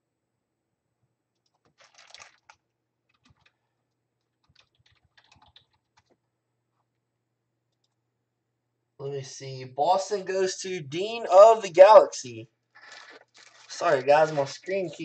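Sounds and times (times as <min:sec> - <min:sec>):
faint clicking and tapping: 0:01.3 - 0:07.0.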